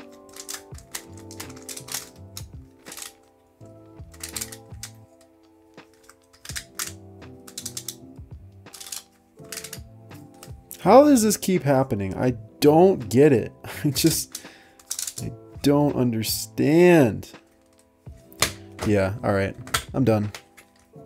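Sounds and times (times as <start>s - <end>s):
plastic puzzle pieces clicking: 0.0s - 3.3s, 4.0s - 8.0s, 8.6s - 10.6s, 14.2s - 15.3s
background music: 0.0s - 21.0s.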